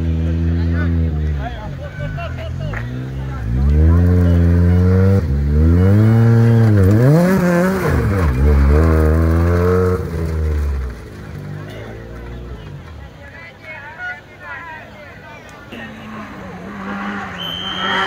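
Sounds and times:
rally car engine revving: 0.0 - 13.0, 15.8 - 18.0.

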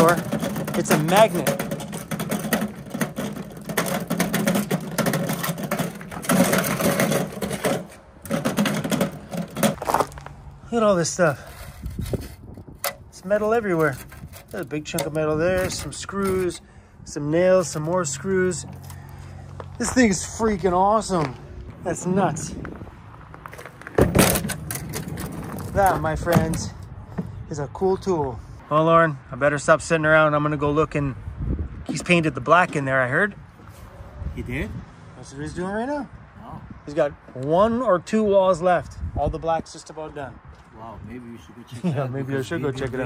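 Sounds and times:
nails and screws clattering: 0.0 - 10.2
sweeper wheels crunching on gravel: 0.0 - 10.4, 19.5 - 26.6.

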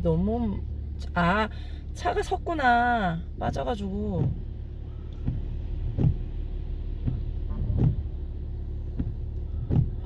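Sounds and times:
car rumble from inside: 0.0 - 10.0
soft thumps: 5.1 - 6.4, 7.0 - 8.1, 8.9 - 10.0.

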